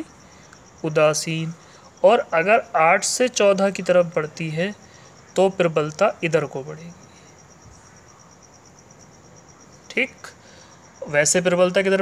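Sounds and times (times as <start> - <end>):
insect chirping: 0.0 - 12.0.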